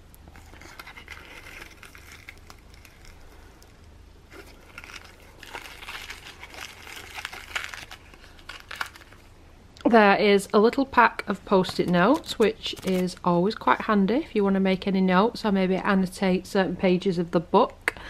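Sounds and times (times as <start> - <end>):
paper packaging crinkling: 0.2 - 9.4, 11.3 - 13.7.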